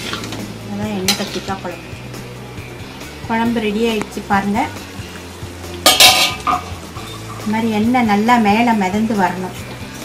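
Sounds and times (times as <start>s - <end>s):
metal pot lid clattering: 1.1s - 1.6s, 5.8s - 7.5s
pot lid clank: 5.8s - 7.5s.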